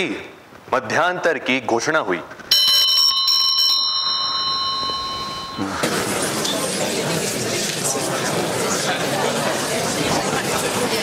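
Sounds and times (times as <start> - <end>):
bell ringing rapidly: 2.5 - 6.5
murmur of voices: 5.0 - 11.0.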